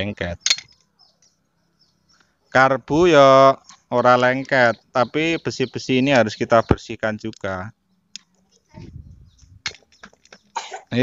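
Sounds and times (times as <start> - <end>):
metal parts knocking together: 0.4 - 0.8
person coughing: 10.6 - 11.0.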